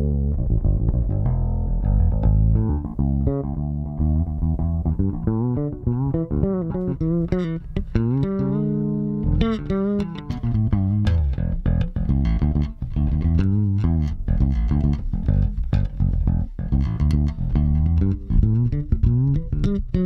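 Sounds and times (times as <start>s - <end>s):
fretless electric bass sliding notes: 0.0s - 20.0s.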